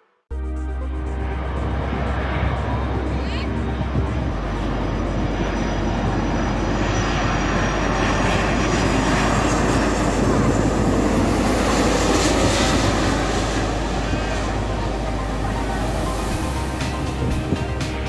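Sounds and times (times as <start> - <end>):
jet airliner passing overhead: 0.3 - 18.0
thin high whine: 0.3 - 18.0.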